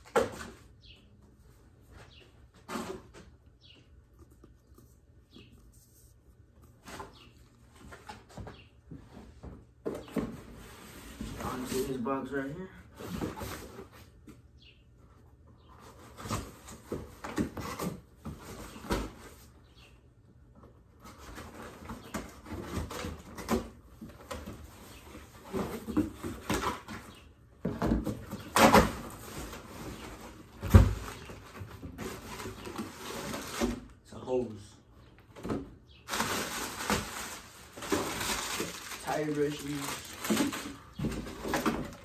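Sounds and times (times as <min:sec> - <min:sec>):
cardboard flaps flexing and knocking: 0:21.0 - 0:33.9, 0:39.7 - 0:42.0
plastic bag rustling: 0:36.1 - 0:42.0
tape scraping and ripping: 0:36.1 - 0:42.0.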